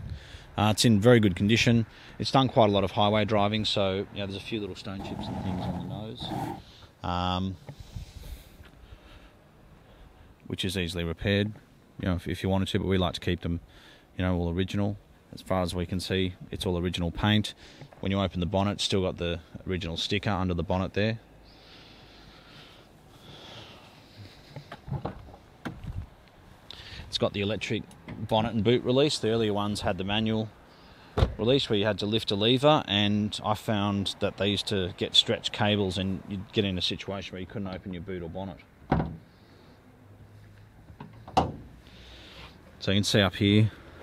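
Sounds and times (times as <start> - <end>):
faint breathing: 0.0 - 0.6, 1.8 - 2.2, 6.3 - 7.0, 7.6 - 10.4, 13.6 - 14.2, 17.5 - 18.0, 21.4 - 24.8, 26.7 - 27.1, 30.6 - 31.2, 39.2 - 40.5, 41.8 - 42.7
car bonnet latch clunk: 38.9 - 39.3, 41.0 - 41.7.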